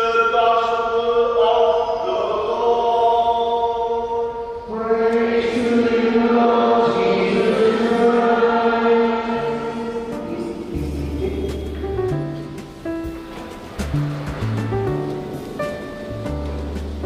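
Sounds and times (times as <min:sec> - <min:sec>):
choir singing a chant-like hymn: 0:00.0 - 0:11.6.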